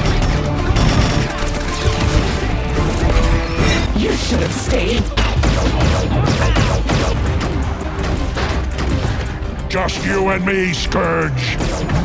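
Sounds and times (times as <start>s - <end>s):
orchestral film score: 0.0s - 12.0s.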